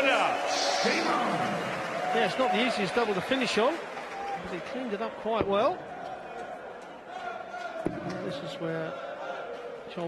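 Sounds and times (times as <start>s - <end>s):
arena crowd hubbub: 0.0s - 10.0s.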